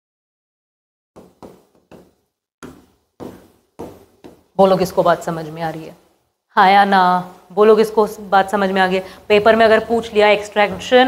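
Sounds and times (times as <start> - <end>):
stylus knocking on display board: 1.2 - 4.5.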